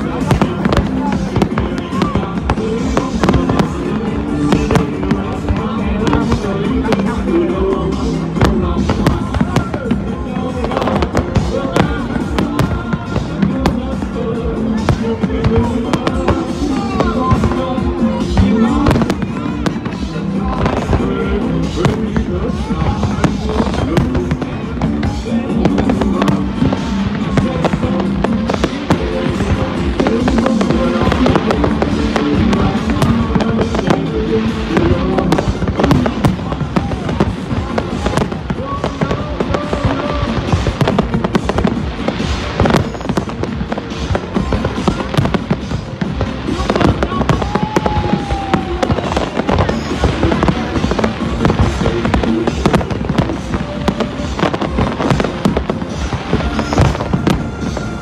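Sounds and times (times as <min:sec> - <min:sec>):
music: 0:00.0 - 0:58.0.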